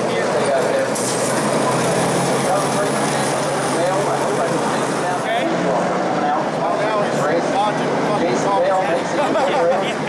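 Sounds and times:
car engines running at low speed: 0:00.0 - 0:10.0
indistinct crowd chatter: 0:00.0 - 0:10.0.

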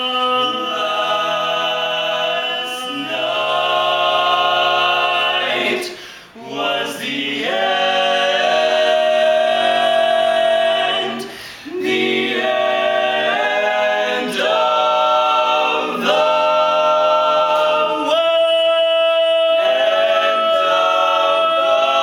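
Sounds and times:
male vocal quartet singing: 0:00.0 - 0:22.0.

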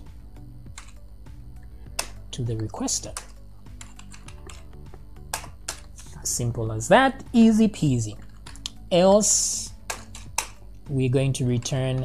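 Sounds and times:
computer keyboard keys clicking: 0:03.2 - 0:04.7.

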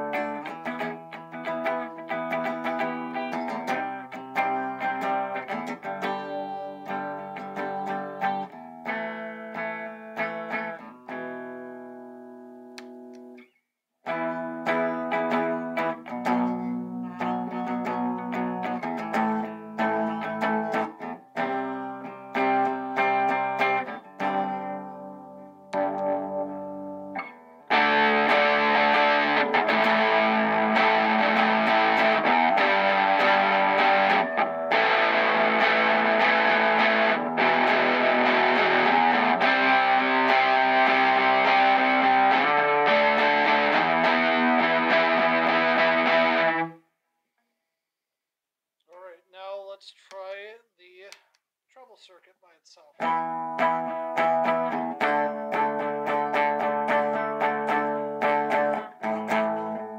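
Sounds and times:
electric guitar chords ringing: 0:00.0 - 0:13.4, 0:14.1 - 0:46.8, 0:53.0 - 0:59.9
distorted guitar strumming: 0:00.0 - 0:13.5, 0:14.1 - 0:46.8, 0:53.0 - 0:59.9.

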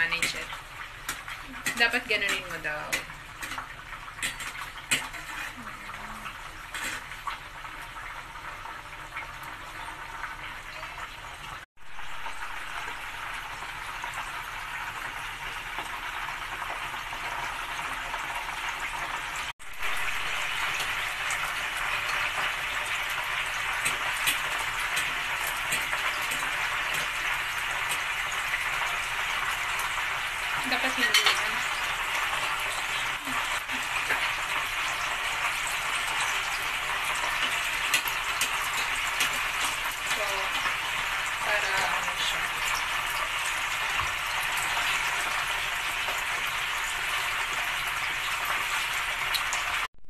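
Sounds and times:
fish sizzling in hot oil: 0:00.0 - 0:49.9.

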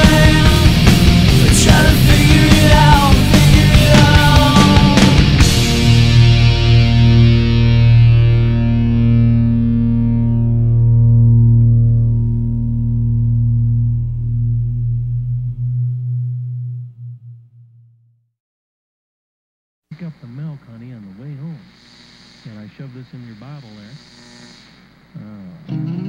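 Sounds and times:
distorted electric guitar chord ringing: 0:00.0 - 0:18.0, 0:25.7 - 0:26.0.

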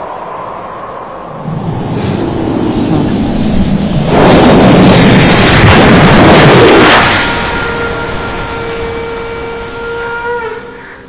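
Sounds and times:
loud rushing boom: 0:01.3 - 0:08.5
sustained horn-like tone: 0:06.8 - 0:11.0.

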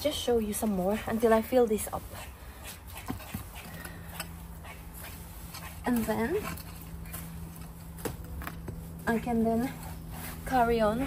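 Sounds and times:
compost scraping and rustling: 0:00.0 - 0:11.0
steady low hum: 0:00.0 - 0:11.0.

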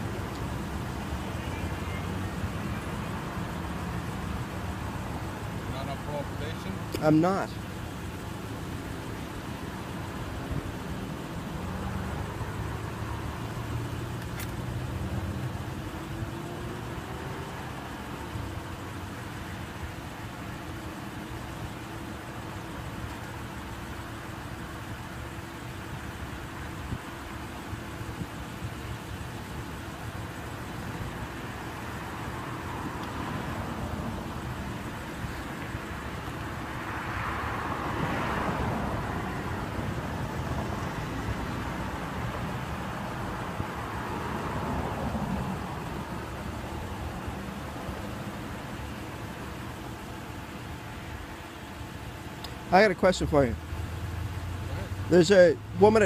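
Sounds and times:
road traffic engine hum: 0:00.0 - 0:56.0
vehicle passing by: 0:36.7 - 0:48.2.

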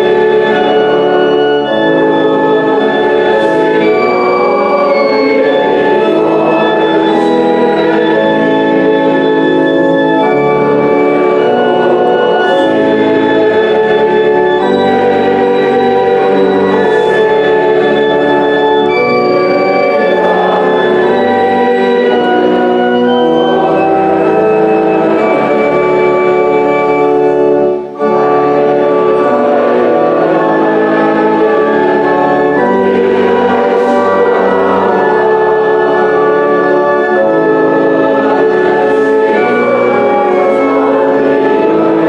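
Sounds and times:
organ playing slow chords: 0:00.0 - 0:42.0.

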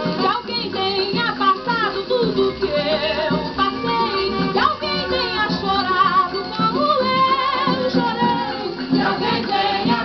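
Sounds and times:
plucked strings and percussion: 0:00.0 - 0:10.0
woman singing samba: 0:00.0 - 0:10.0.

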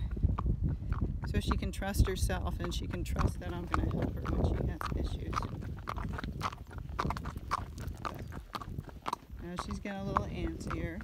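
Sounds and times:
horse hooves clip-clopping on pavement: 0:00.0 - 0:11.0.

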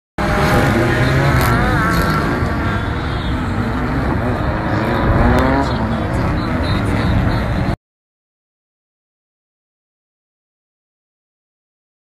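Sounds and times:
car engines revving: 0:00.2 - 0:07.8.

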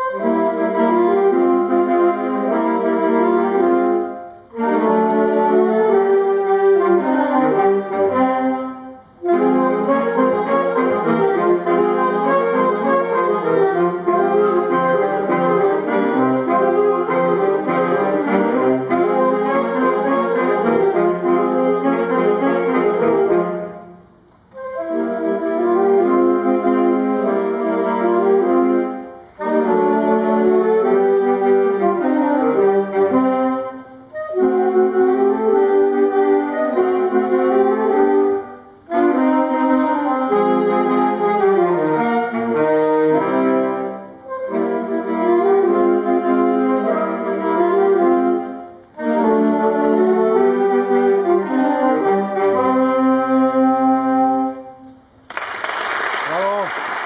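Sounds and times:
saxophone ensemble playing: 0:00.0 - 0:55.2.

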